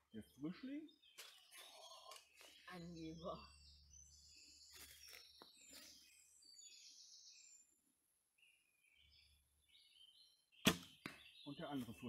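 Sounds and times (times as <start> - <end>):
faint birdsong chirps: 0.0 - 12.0.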